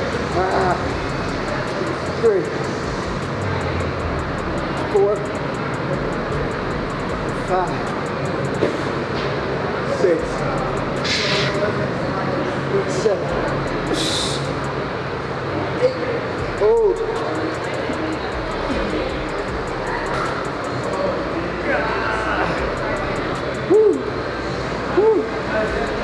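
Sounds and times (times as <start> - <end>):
background music: 0.0 - 9.2, 13.0 - 14.8, 16.4 - 24.1
busy gym ambience: 0.0 - 26.0.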